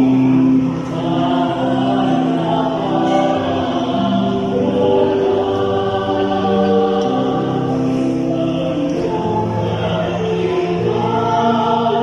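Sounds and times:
church choir singing a hymn: 0.0 - 12.0.

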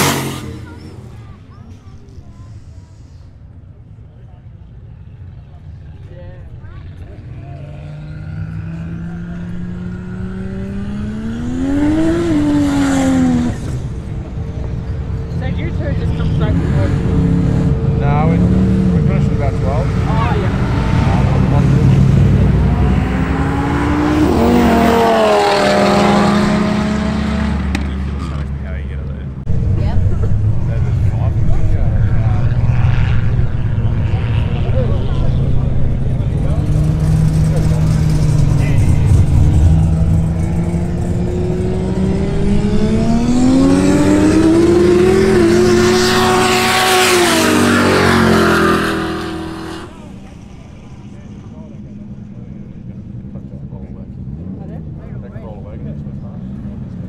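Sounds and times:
cars accelerating hard: 0.0 - 1.5, 6.5 - 57.0.

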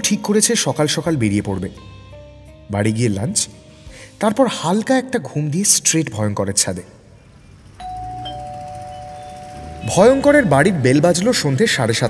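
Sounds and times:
two-tone doorbell chime: 7.8 - 10.8.

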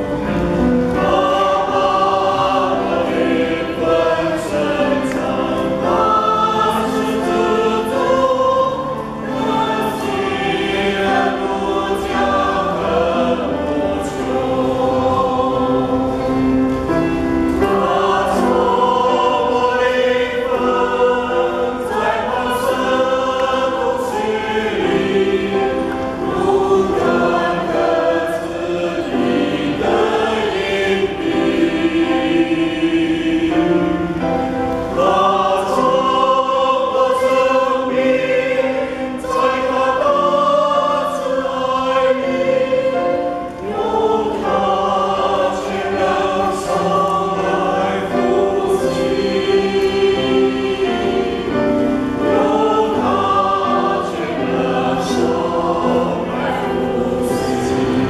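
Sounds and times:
church choir singing a hymn: 0.0 - 58.0.

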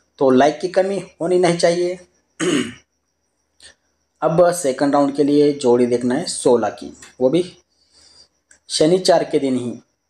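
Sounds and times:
man clearing his throat: 2.4 - 2.9
faint click: 8.4 - 8.7.

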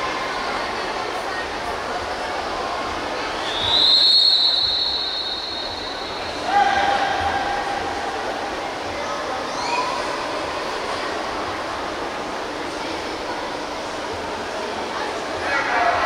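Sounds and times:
murmur of pool hall: 0.0 - 16.0
referee's whistle blast: 3.4 - 6.4.

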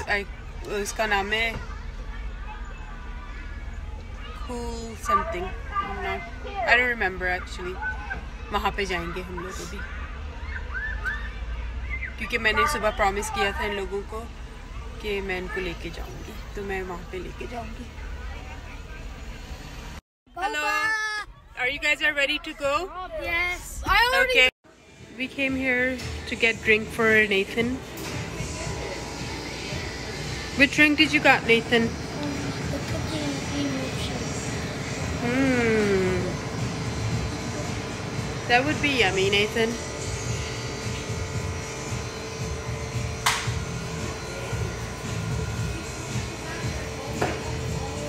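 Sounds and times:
faint voices: 0.0 - 25.4, 26.1 - 43.1, 43.8 - 48.0
machine hum and rumble: 0.0 - 48.0.

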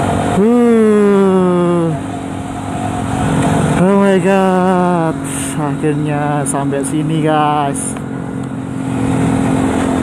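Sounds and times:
motorcycle running: 0.0 - 10.0
wind and road noise: 0.0 - 10.0.

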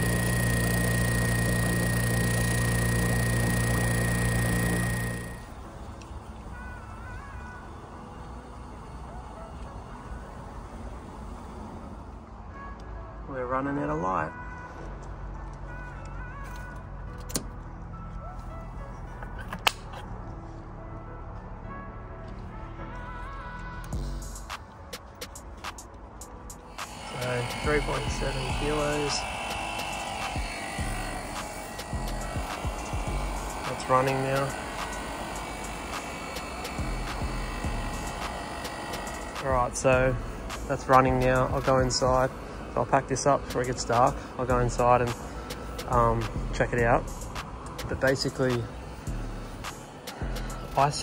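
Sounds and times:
steady low hum: 0.0 - 12.2, 26.3 - 51.0
air conditioner outdoor unit running: 0.0 - 12.7, 24.0 - 51.0
faint background music: 5.3 - 51.0.

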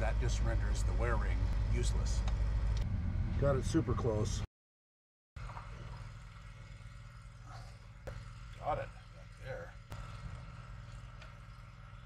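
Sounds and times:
faint low engine hum: 0.0 - 4.5.

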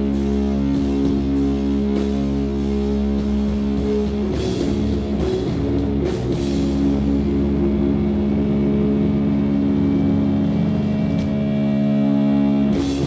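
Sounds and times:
sustained rock guitar chord: 0.0 - 13.0.

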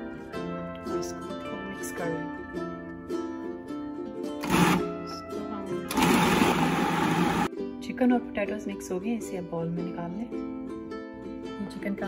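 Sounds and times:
plucked-string background music: 0.0 - 12.0
food processor motor running: 4.4 - 5.0, 5.9 - 7.5.

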